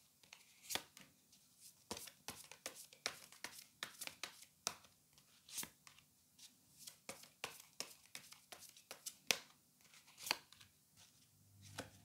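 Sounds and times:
cards being shuffled: 9.8s - 12.0s.

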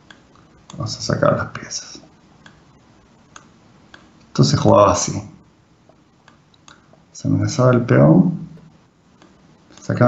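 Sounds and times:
low room noise: 0.0s - 10.0s
faint sharp clicks: 3.3s - 4.3s, 5.9s - 7.0s, 8.6s - 9.9s.

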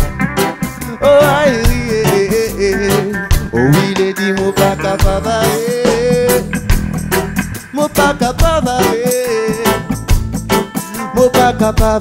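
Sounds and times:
acoustic guitar: 0.0s - 12.0s
drum kit steady beat: 0.0s - 12.0s
gliding melody line: 3.5s - 4.2s.

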